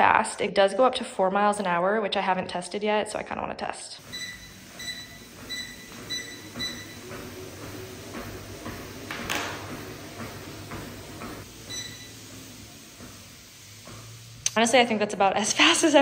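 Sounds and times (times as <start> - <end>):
treadmill short beeps: 4.0 - 12.5
footsteps on treadmill belt: 4.0 - 14.6
treadmill motor hum: 4.0 - 16.0.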